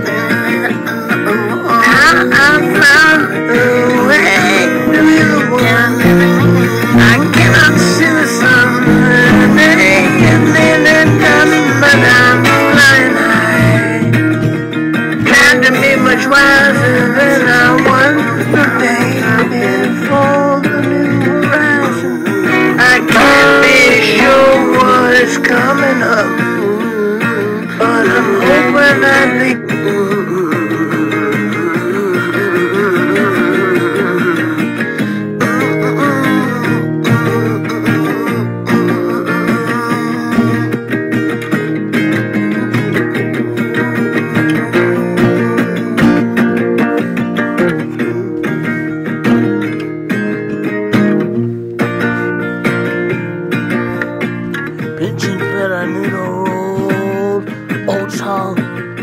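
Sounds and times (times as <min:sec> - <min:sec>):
acoustic guitar notes: 0:00.0 - 0:59.0.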